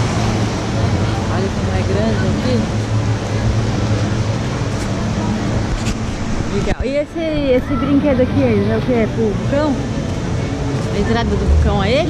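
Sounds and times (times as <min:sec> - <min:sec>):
outdoor rushing noise: 0:00.0 - 0:12.0.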